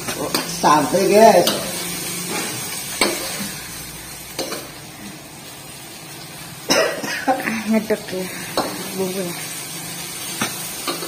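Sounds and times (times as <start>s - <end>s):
vegetables sizzling in a wok: 0.0s - 11.0s.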